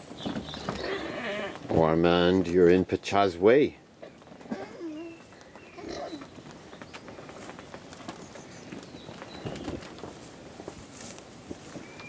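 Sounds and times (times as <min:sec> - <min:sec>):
animals chewing hay: 0:04.0 - 0:12.0.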